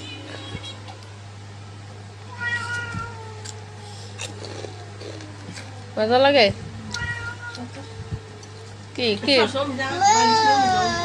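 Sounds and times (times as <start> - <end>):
whiny cry: 9.9 - 11.0.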